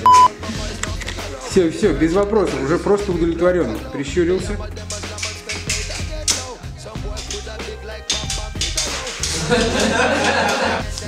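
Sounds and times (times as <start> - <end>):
hip-hop music with deep bass: 0.0 - 11.0.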